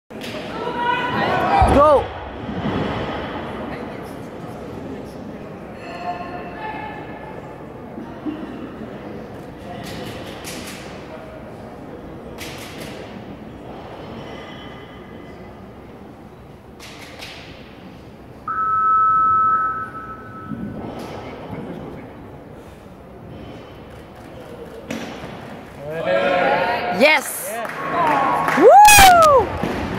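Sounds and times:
voices echoing in a hall: 0:00.1 - 0:28.6
two-tone beep: 0:18.5 - 0:20.7.

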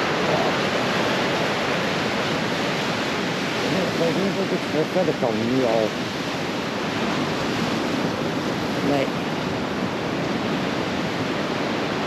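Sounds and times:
sea surf on rocky shore: 0:00.0 - 0:12.0.

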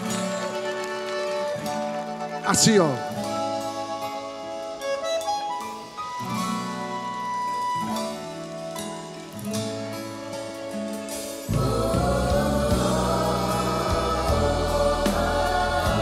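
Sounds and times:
accordion: 0:00.0 - 0:16.0
acoustic guitar: 0:00.0 - 0:16.0
bass: 0:11.5 - 0:16.0.

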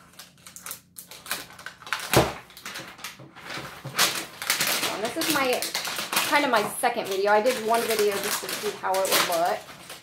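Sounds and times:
plastic wrapping crinkling and tearing: 0:00.0 - 0:10.0
small crackling clicks: 0:03.9 - 0:10.0.

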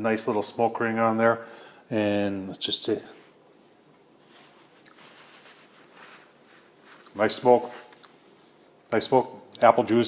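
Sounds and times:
paper towel rustling: 0:03.0 - 0:08.0.

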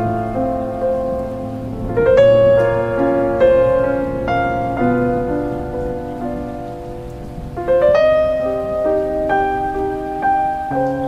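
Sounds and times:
slow piano music: 0:00.0 - 0:11.0.

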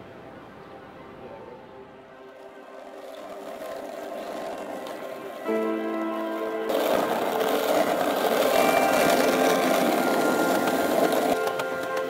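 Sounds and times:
background music: 0:00.0 - 0:12.0
skateboard wheels rolling on pavement: 0:02.0 - 0:12.0.

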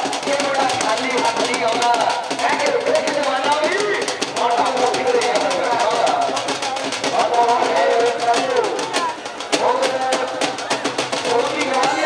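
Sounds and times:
fast drum beats: 0:00.0 - 0:12.0.

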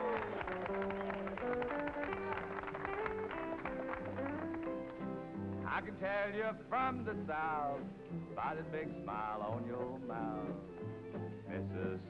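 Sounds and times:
instrumental country music: 0:00.0 - 0:12.0.

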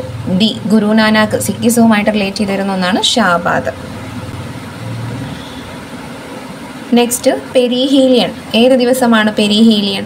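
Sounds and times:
low hum: 0:00.0 - 0:06.9.

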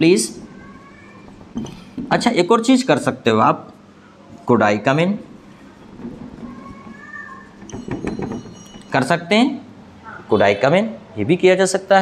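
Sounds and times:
marker squeaking on whiteboard: 0:05.5 - 0:09.0.

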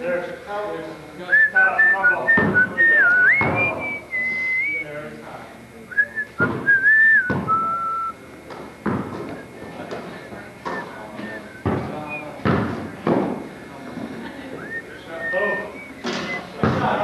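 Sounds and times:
low voices: 0:00.0 - 0:17.0
person whistling a tune: 0:01.3 - 0:04.8, 0:05.9 - 0:08.2, 0:10.7 - 0:12.3, 0:14.6 - 0:16.6.

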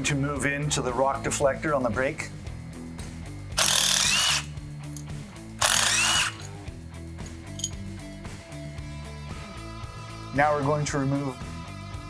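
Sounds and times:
cordless impact tool: 0:03.6 - 0:04.5, 0:05.6 - 0:06.5
background music with beat: 0:06.3 - 0:12.0.

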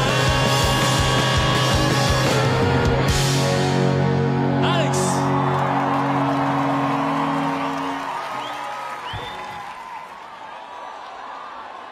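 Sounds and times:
crowd cheering: 0:04.3 - 0:11.9
whistles from crowd: 0:07.8 - 0:10.0.

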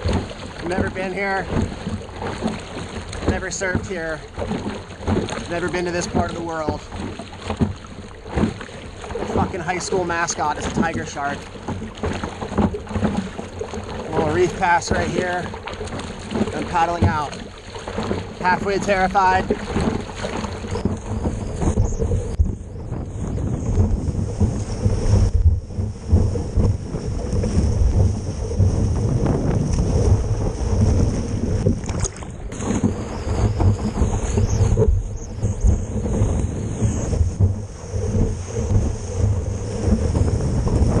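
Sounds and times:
water rushing and splashing: 0:00.0 - 0:41.0
wind buffeting microphone: 0:00.0 - 0:41.0.

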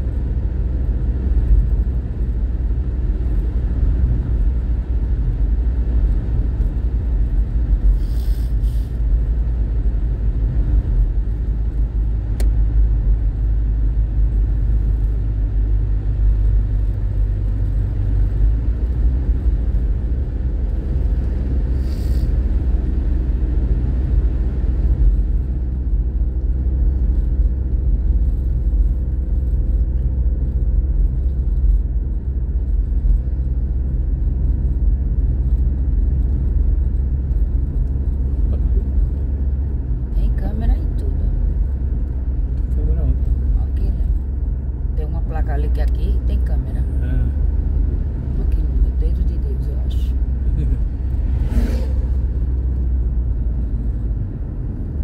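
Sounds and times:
car engine and tyre rumble: 0:00.0 - 0:55.0
engine hum: 0:00.0 - 0:55.0.

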